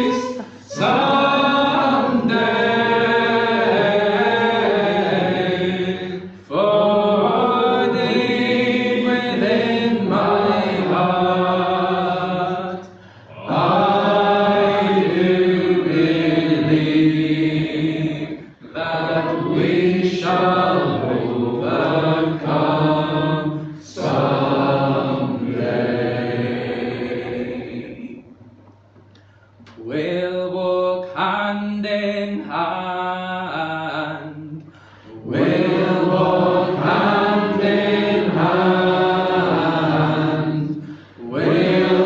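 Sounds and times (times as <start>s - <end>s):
voices singing gospel song: 0.0s - 28.3s, 29.8s - 42.0s.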